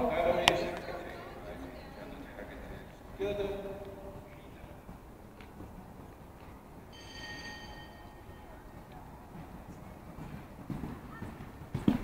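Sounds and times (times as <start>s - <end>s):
bell-like ring: 6.9s - 8.7s.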